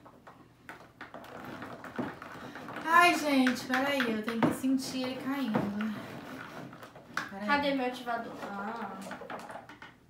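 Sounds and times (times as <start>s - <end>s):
wet scraping of slime stirring: 0.9s - 9.7s.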